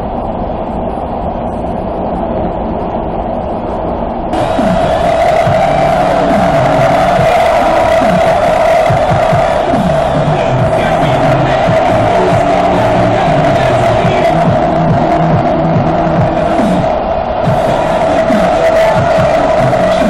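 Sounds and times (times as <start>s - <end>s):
high-pitched whine: 0.0s - 20.0s
passengers' voices: 0.0s - 20.0s
subway car running: 0.0s - 20.0s
music: 4.4s - 20.0s.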